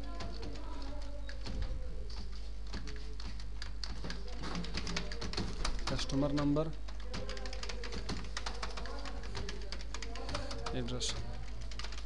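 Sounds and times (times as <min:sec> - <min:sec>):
computer keyboard typing: 0:00.0 - 0:12.0.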